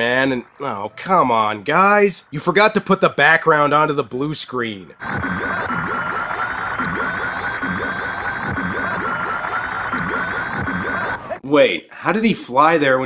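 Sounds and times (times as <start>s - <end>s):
high electronic whine: 5.0s - 11.4s
low warbling pulse: 5.0s - 11.4s.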